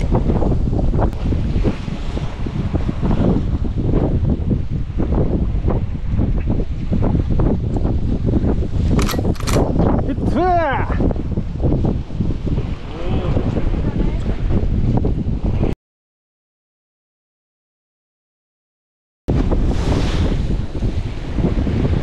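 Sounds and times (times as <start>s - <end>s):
wind buffeting microphone: 0.0s - 15.8s, 19.3s - 22.0s
sea waves: 19.3s - 22.0s.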